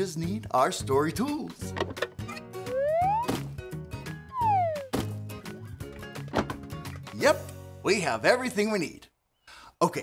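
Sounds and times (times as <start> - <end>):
light background music: 0.0 - 9.0
rising whistle sound effect: 2.7 - 3.4, 4.3 - 4.9.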